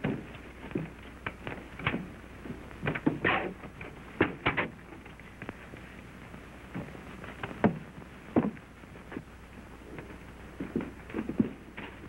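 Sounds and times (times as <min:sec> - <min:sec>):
steady low hum: 0:00.0 - 0:12.0
knocks and thumps on wood: 0:07.6 - 0:08.6.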